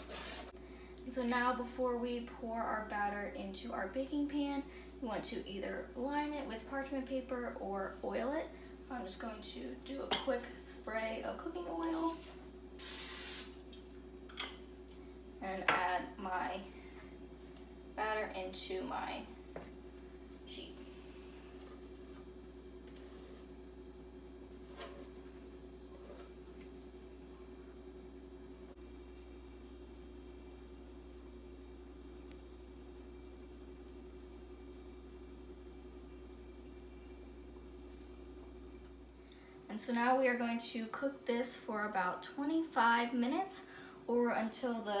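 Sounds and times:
steady low hum: 0.0s - 45.0s
aerosol spray hiss: 12.8s - 13.6s.

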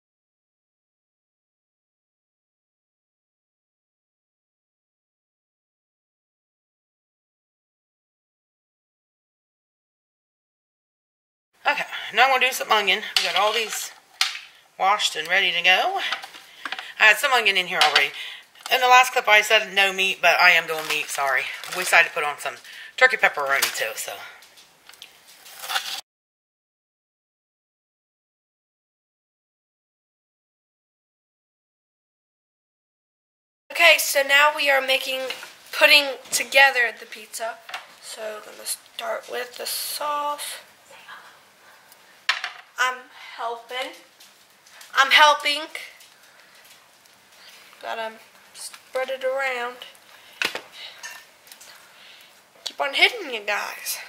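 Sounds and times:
woman speaking: 11.7s - 14.0s, 14.8s - 24.4s, 33.7s - 41.4s, 42.8s - 44.1s, 44.9s - 46.1s, 47.8s - 50.0s, 52.7s - 54.0s
metal spoon clinking on pan: 51.0s - 51.3s.

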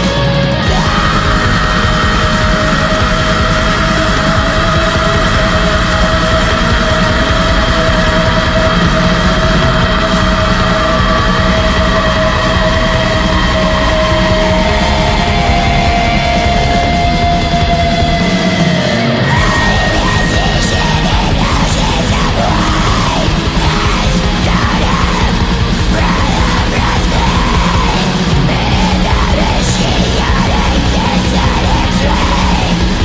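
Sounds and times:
black metal music: 0.0s - 33.0s.

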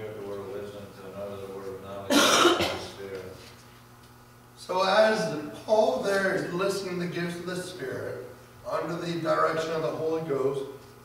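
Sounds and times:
person coughing loudly: 2.1s - 3.0s.

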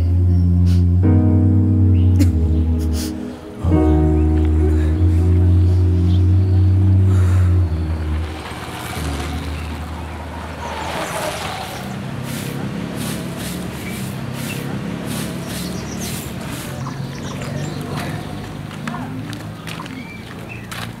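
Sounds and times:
loud low hum: 0.0s - 16.5s
motorcycle passing: 1.7s - 21.0s
broom sweeping earth: 10.7s - 17.0s.

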